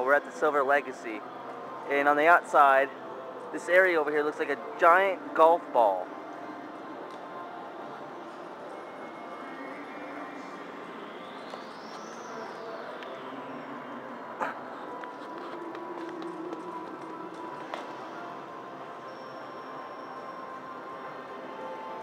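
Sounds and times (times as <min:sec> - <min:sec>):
background music: 0:00.0 - 0:22.0
murmur of distant voices: 0:00.0 - 0:22.0.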